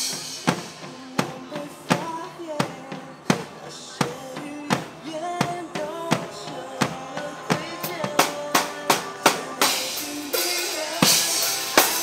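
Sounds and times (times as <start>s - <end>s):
song melody: 0.0s - 12.0s.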